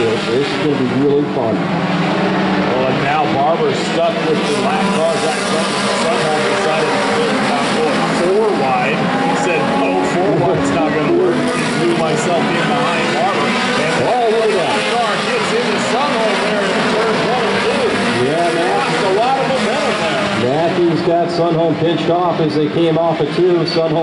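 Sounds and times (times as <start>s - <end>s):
stock car engines racing: 0.0s - 24.0s.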